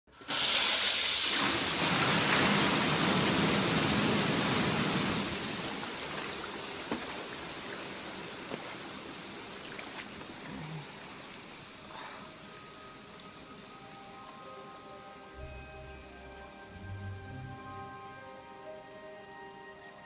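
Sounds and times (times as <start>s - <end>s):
water gushing from taps: 0.1s - 11.8s.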